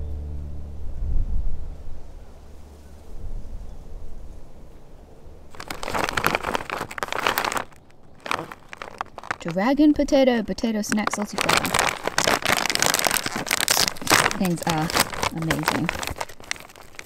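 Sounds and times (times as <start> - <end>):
wind rumble on microphone: 0.6 - 5.6
plastic snack bag crinkling: 5.5 - 17.0.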